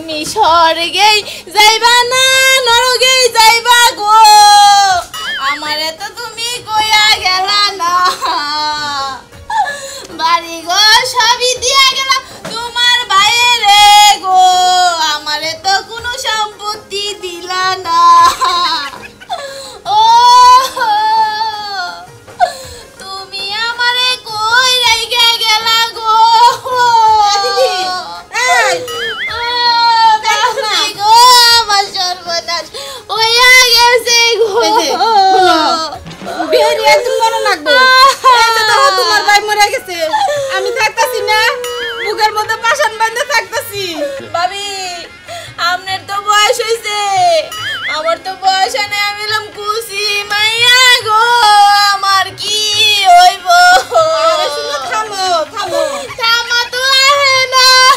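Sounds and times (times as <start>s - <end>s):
woman wailing and sobbing: 1.5s - 15.2s, 17.4s - 57.9s
woman wailing: 26.4s - 30.9s, 34.3s - 44.4s, 52.8s - 57.9s.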